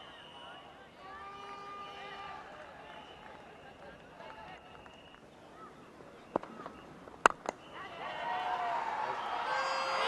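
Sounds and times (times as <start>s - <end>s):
stadium crowd shouting and cheering: 0.0s - 4.9s, 7.7s - 10.0s.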